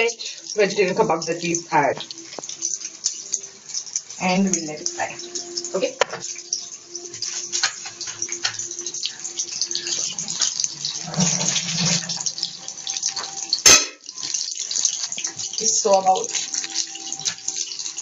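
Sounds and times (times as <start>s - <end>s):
food sizzling in hot oil: 0.0s - 18.0s.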